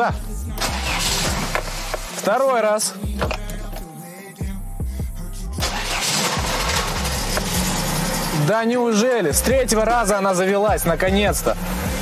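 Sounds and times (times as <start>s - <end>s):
music: 0.0s - 12.0s
engine cranking and starting: 0.5s - 2.4s, 3.1s - 3.8s, 5.6s - 8.5s.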